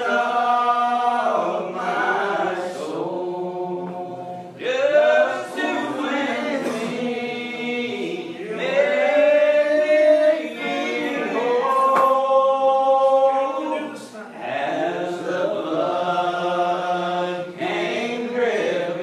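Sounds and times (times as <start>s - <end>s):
congregation singing a hymn: 0.0s - 19.0s.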